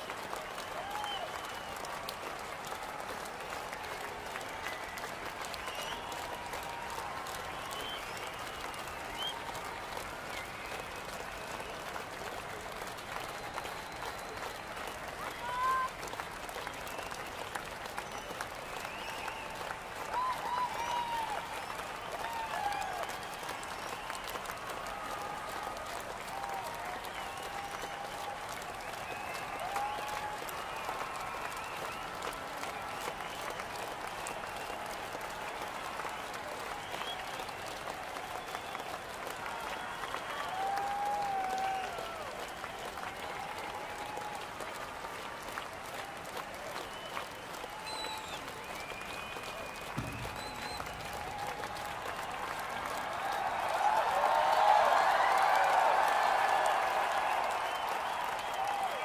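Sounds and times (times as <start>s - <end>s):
crowd applauding and cheering: 0.0s - 59.0s.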